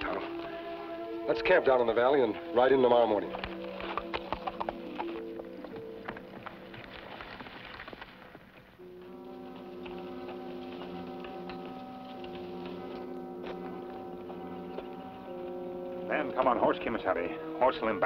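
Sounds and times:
orchestral music: 0.0 - 7.1, 8.8 - 18.0
horse hooves clip-clopping: 0.0 - 18.0.

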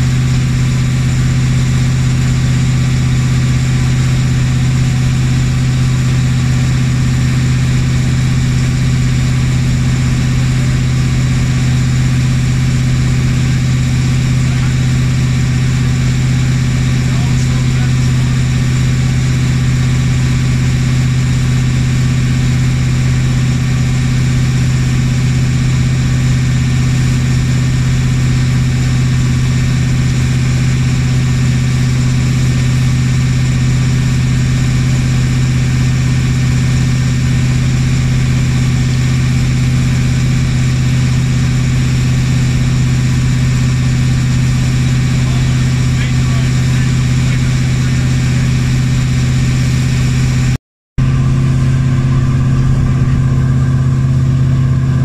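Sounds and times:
boat engine humming: 0.0 - 55.0.

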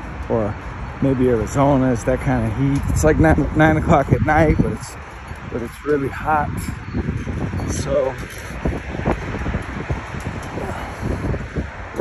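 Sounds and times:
highway traffic noise: 0.0 - 12.0
wind buffeting microphone: 0.0 - 12.0.

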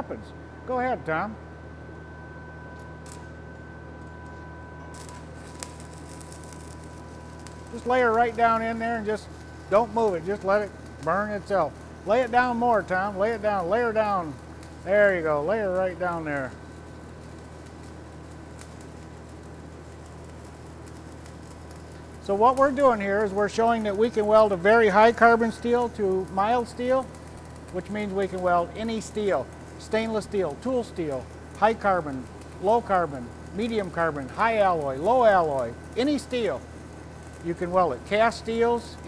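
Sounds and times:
faint high whine: 0.0 - 39.0
low hum: 0.0 - 39.0
welding arc crackling: 2.6 - 39.0.

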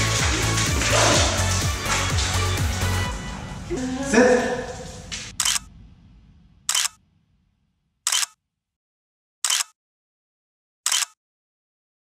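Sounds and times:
music: 0.0 - 5.3
camera shutter clicks: 5.4 - 5.7, 6.7 - 7.0, 8.1 - 8.4, 9.4 - 9.8, 10.9 - 11.2.

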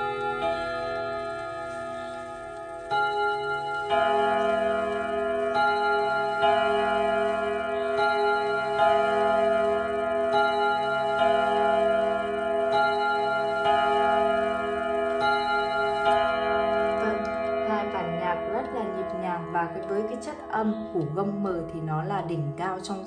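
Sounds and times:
wall clock chiming on gong rods: 0.0 - 22.1.

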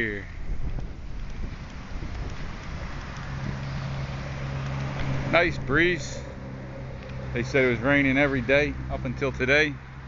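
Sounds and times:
wind buffeting microphone: 0.0 - 8.9
steady low hum: 2.2 - 9.2.

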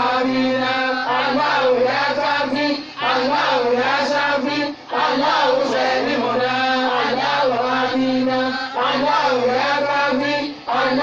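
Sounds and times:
man chanting into a microphone: 0.0 - 4.9, 5.6 - 11.0.

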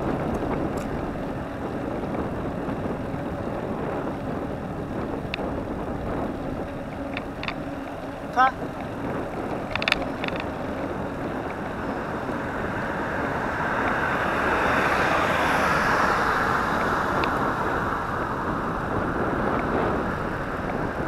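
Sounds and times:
bicycle tyres on paved road: 0.0 - 21.0
wind on microphone: 0.0 - 21.0.

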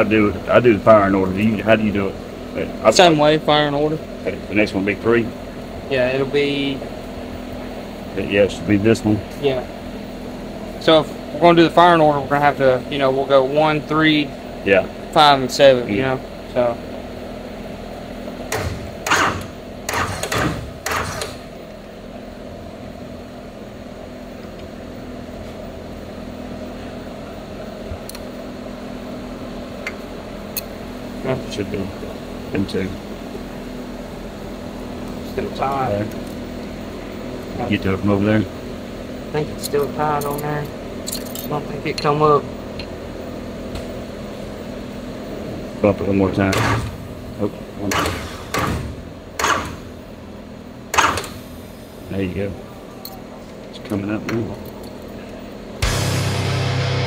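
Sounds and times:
steady low hum: 0.0 - 57.0.

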